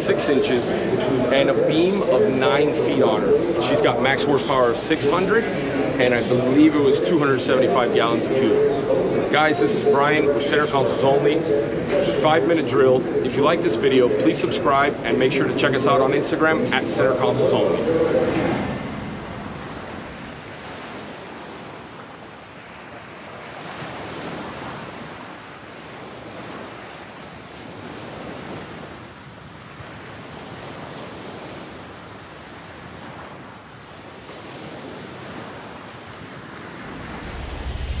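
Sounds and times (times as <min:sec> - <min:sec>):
ocean waves washing in: 0:00.0 - 0:38.0.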